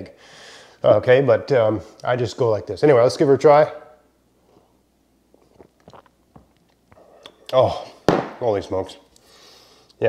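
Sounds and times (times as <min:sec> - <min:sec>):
sipping and swallowing: 0:05.3 - 0:07.6.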